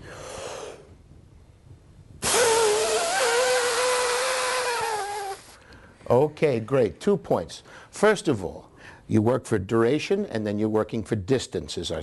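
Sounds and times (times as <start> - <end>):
whistling exhale through lips: 2.2 - 3.5.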